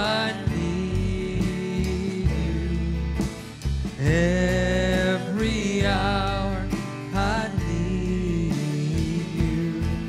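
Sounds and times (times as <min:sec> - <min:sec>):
acoustic guitar chords: 0:00.0 - 0:10.0
bass: 0:00.0 - 0:10.0.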